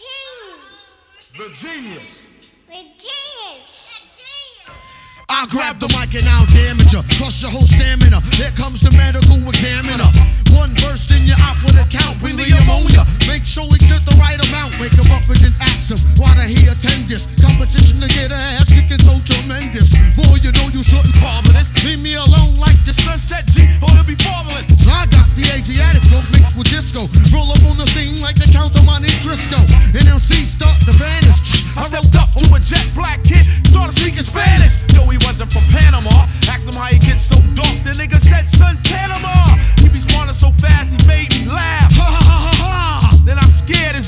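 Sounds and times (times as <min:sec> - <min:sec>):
man rapping over a beat: 0:05.3 - 0:44.0
heavy bass pulse: 0:05.8 - 0:44.0.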